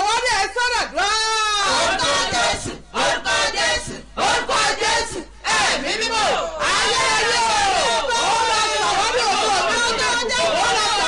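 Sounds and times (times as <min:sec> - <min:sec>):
woman praying aloud: 0:00.0 - 0:02.8, 0:05.0 - 0:11.0.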